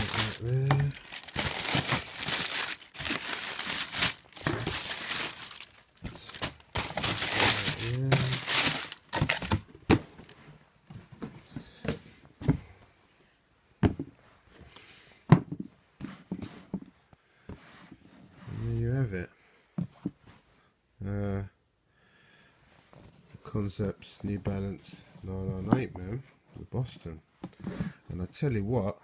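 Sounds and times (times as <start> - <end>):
tissue paper crinkling: 0.0 - 9.6.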